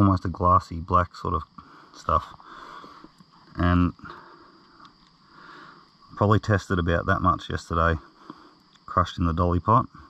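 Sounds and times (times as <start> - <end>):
faint breathing: 1.5 - 6.1, 8.0 - 8.7
small tick: 4.6 - 5.2, 8.3 - 8.9.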